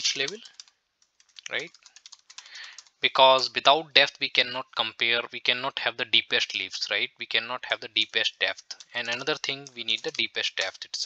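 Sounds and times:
computer keyboard typing: 0.0s - 3.5s, 8.0s - 11.0s.

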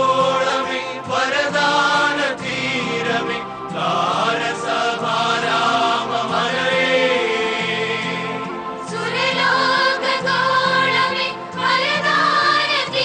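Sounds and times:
low steady accompaniment: 0.0s - 13.0s
voices chanting long notes: 0.0s - 13.0s.

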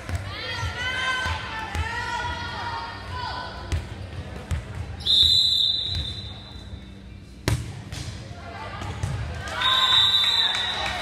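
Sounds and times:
referee's whistle blowing: 5.0s - 6.8s, 9.6s - 10.9s.

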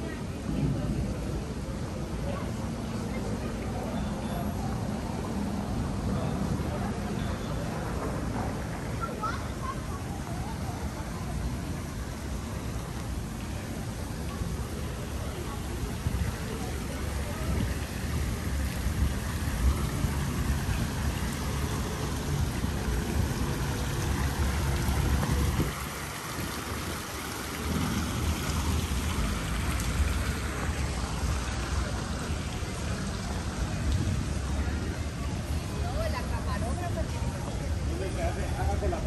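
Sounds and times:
wind rumbling on microphone: 10.1s - 35.9s.

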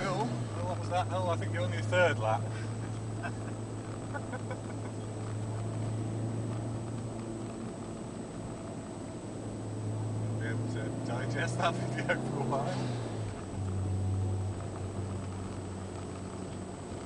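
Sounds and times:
car engine drone from cabin: 0.0s - 17.0s
road and tyre noise: 0.0s - 17.0s.

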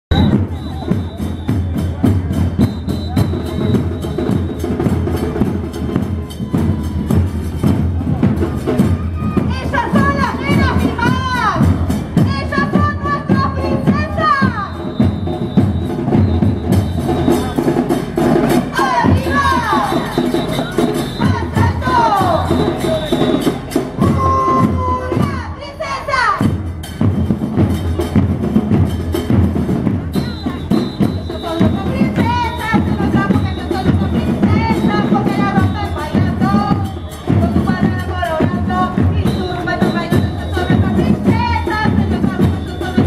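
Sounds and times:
bass drums beating: 0.1s - 25.6s, 26.3s - 43.0s.

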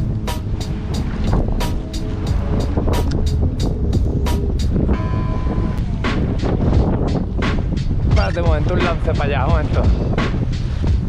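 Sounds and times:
music with quick beat: 0.0s - 5.0s, 5.8s - 11.0s
low rumble of wind and boat: 0.0s - 11.0s.

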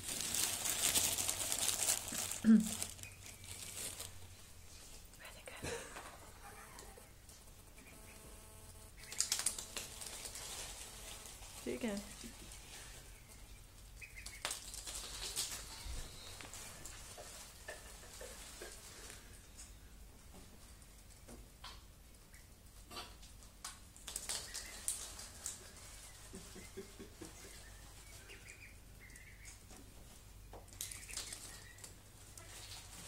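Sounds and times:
ducklings peeping: 0.4s - 4.3s, 6.2s - 19.8s, 24.0s - 33.0s.

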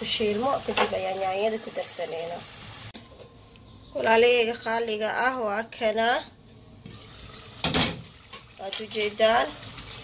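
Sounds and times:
stew simmering: 6.4s - 10.0s.

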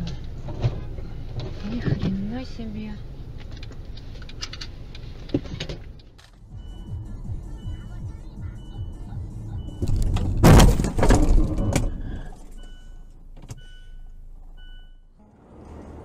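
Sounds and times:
short regular beeps: 6.4s - 10.0s, 11.5s - 15.2s
car crash impact and crunching: 9.8s - 12.6s.

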